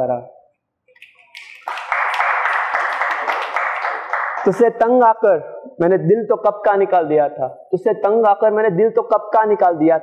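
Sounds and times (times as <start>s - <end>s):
audience applause: 1.0s - 4.6s.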